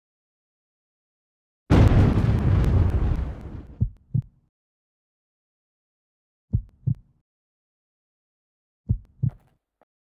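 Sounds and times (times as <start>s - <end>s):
boom with deep rumble: 1.7s - 3.9s.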